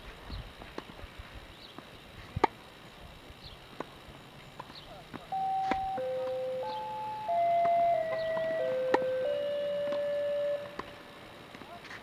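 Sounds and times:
simple electronic tune: 0:05.3 - 0:11.2
racket striking tennis ball: 0:07.6 - 0:09.2, 0:09.8 - 0:11.0.

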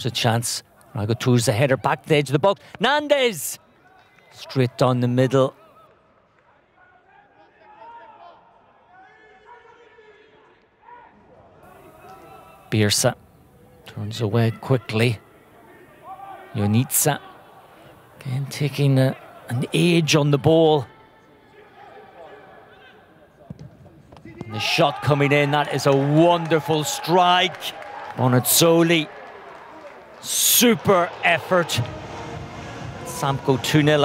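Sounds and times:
footballers shouting and calling: 0:00.0 - 0:05.9, 0:06.8 - 0:34.0
distant players shouting: 0:24.2 - 0:34.0.

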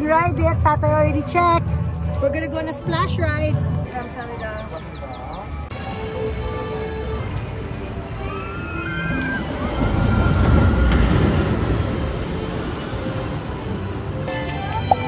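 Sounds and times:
background music: 0:00.0 - 0:15.0
water rushing and splashing: 0:05.6 - 0:15.0.

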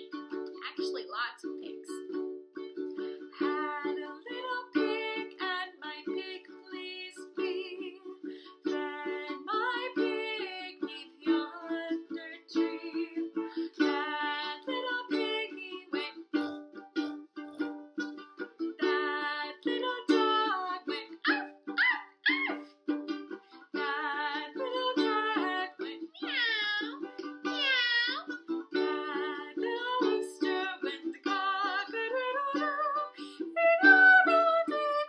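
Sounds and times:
ukulele strumming: 0:00.0 - 0:35.0
woman singing: 0:00.6 - 0:02.0, 0:03.2 - 0:16.2, 0:18.8 - 0:21.5, 0:23.6 - 0:35.0
swooping animal imitation calls: 0:21.2 - 0:22.7.

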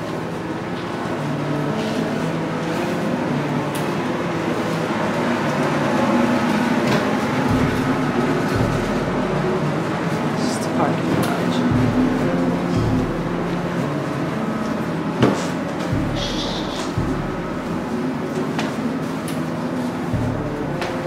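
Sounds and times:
loud background rumble: 0:00.0 - 0:21.0
low wavering hum: 0:00.0 - 0:21.0.

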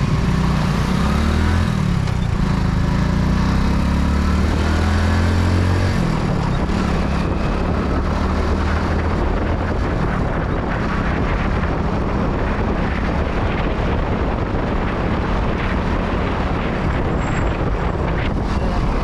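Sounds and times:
motorcycle engine running: 0:00.0 - 0:19.0
wind rushing over microphone: 0:00.0 - 0:19.0.

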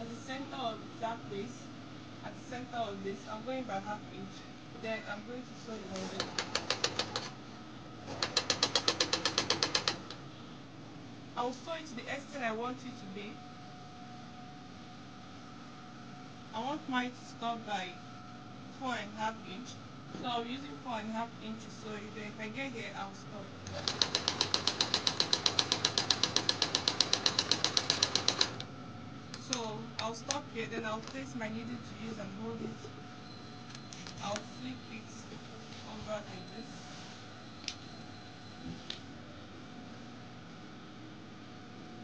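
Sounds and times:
sewing machine stitching: 0:06.0 - 0:07.3, 0:08.1 - 0:10.0, 0:23.7 - 0:28.6.

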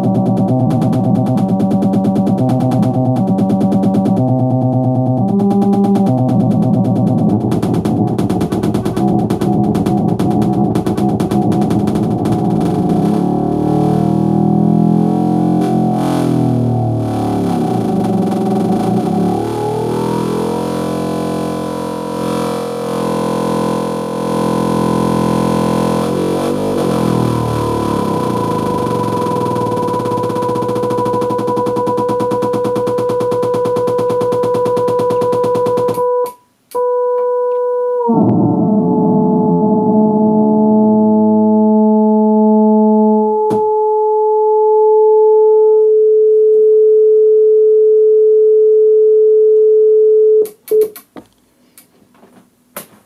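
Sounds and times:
gliding electronic tones: 0:16.8 - 0:20.7, 0:27.0 - 0:45.8.

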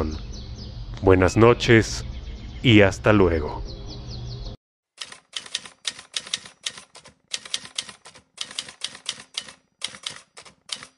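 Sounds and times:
typewriter keys clacking: 0:05.0 - 0:10.9.

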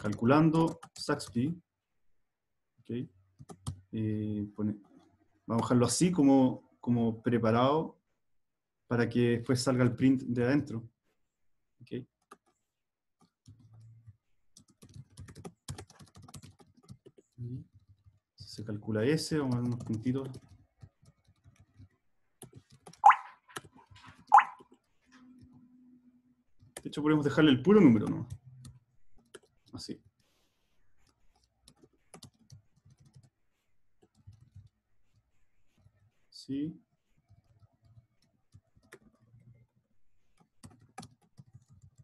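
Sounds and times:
typing on computer keyboard: 0:00.0 - 0:01.3, 0:03.4 - 0:03.8, 0:13.2 - 0:18.2, 0:19.4 - 0:25.6, 0:31.0 - 0:33.3, 0:34.0 - 0:34.7, 0:37.2 - 0:42.0
computer keyboard keystrokes: 0:14.6 - 0:17.2, 0:40.4 - 0:42.0.

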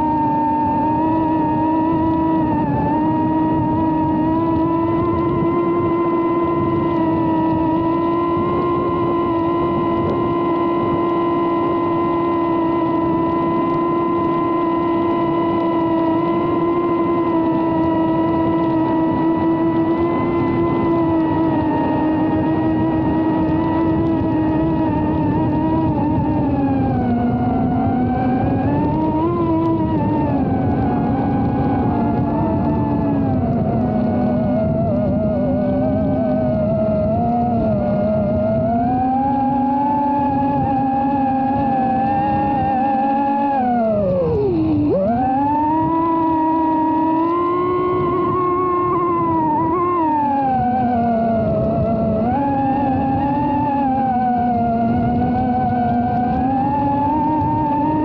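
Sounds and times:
drone motors and propellers whining: 0:00.0 - 0:58.0.

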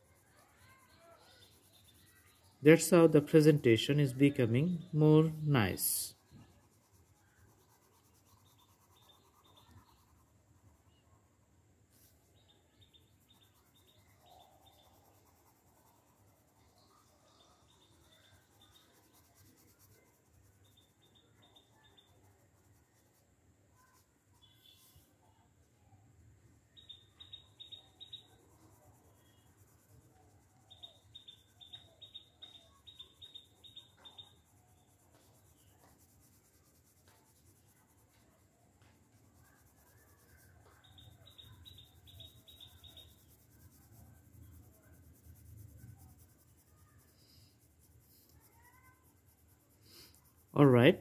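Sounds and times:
pencil scratching on paper: 0:00.0 - 0:11.0, 0:11.9 - 0:25.1, 0:28.0 - 0:50.8.

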